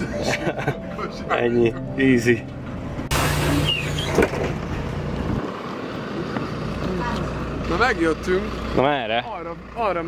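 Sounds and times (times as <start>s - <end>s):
vehicle engine hum: 0.0s - 10.0s.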